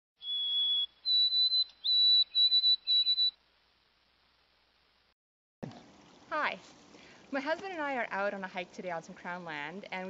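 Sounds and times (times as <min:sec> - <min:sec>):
bird singing whistled notes: 0:00.2 - 0:03.4.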